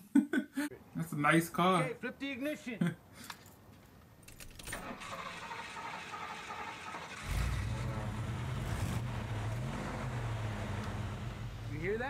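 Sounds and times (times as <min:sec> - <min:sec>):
car keys jingling: 0:03.2 - 0:05.0
starter cranking engine: 0:04.7 - 0:11.0.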